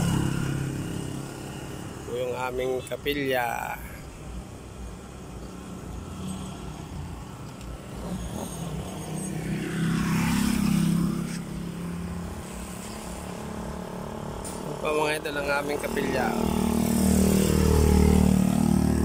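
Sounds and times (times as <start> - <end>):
vehicle engine hum passing: 0.0 - 2.8, 4.0 - 19.0.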